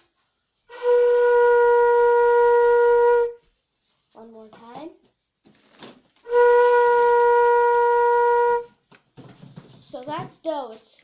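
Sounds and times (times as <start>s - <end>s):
breathy flute note: 0.7s - 3.4s, 6.3s - 8.8s.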